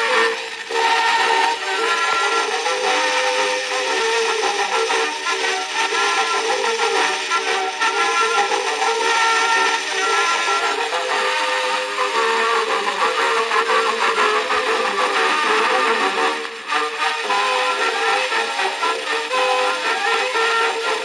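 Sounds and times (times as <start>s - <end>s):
brass band playing: 0.0s - 21.0s
surface noise hiss: 0.0s - 21.0s.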